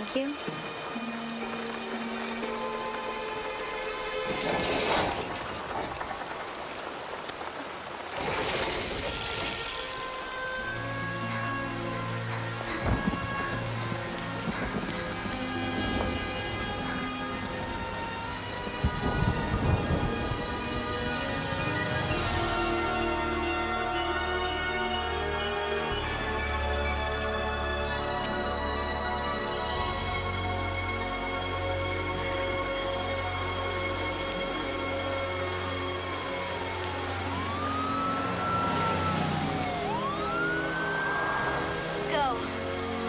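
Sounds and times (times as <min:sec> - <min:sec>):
music with long held notes: 0:00.0 - 0:05.0, 0:09.5 - 0:43.0
heavy rain: 0:00.0 - 0:43.0
thunder: 0:12.7 - 0:18.0, 0:18.6 - 0:22.8.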